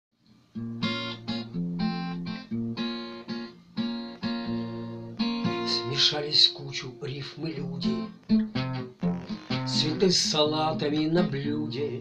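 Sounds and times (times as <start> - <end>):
acoustic guitar strumming: 0.5 - 12.0.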